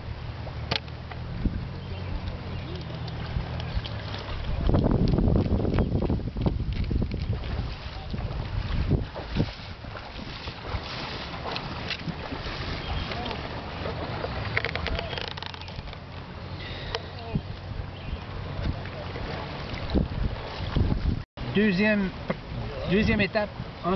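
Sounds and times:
wind buffeting microphone: 0.0 - 21.2.

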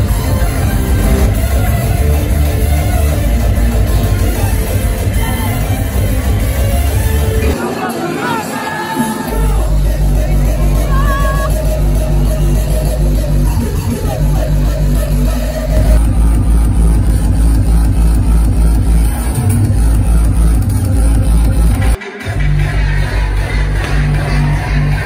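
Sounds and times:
hardstyle dance music: 0.0 - 25.0.

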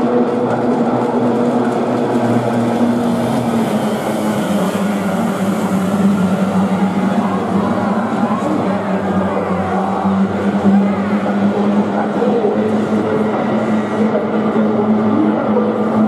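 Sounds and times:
racing boat engines droning: 0.0 - 16.0.

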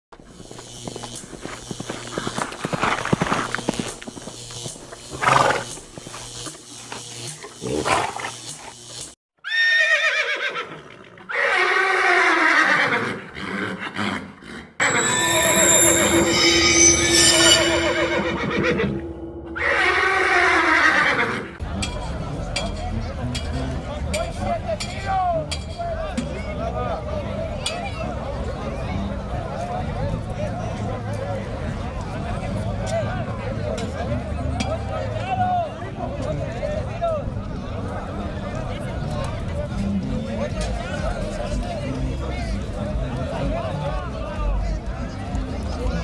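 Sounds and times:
horse whinnies: 9.4 - 21.5
music: 14.8 - 46.0.

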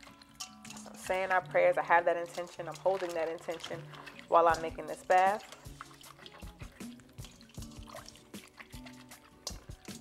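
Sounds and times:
hands swishing herbs in water: 0.0 - 10.0
soft background music: 0.0 - 10.0
water splashes and drips: 0.0 - 10.0.

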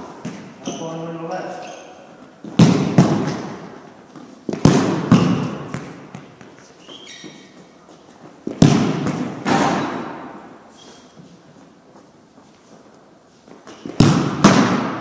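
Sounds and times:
ball thuds echoing in a hall: 0.0 - 15.0.

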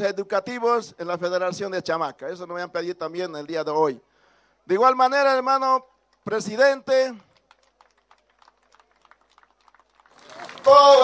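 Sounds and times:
man's voice: 0.0 - 4.0, 4.7 - 7.2, 10.6 - 11.0.

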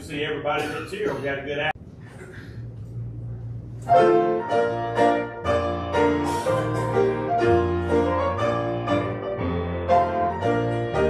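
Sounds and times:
grand piano: 3.0 - 11.0
electric bass guitar: 5.4 - 11.0.

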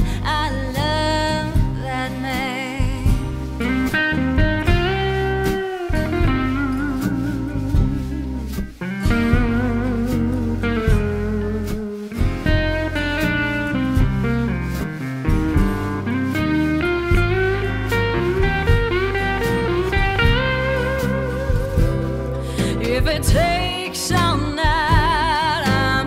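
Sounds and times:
bass guitar: 0.0 - 26.0
lead guitar sliding notes: 0.0 - 26.0
steady drum beat: 0.0 - 26.0.

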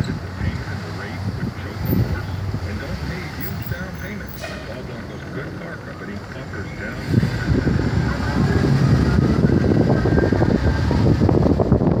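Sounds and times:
street noise: 0.0 - 12.0
wind buffeting microphone: 6.3 - 12.0.

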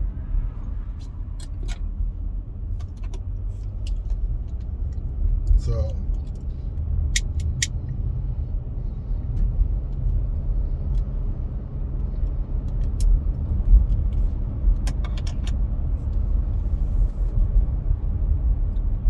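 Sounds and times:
car engine and tyres droning: 0.0 - 19.0.

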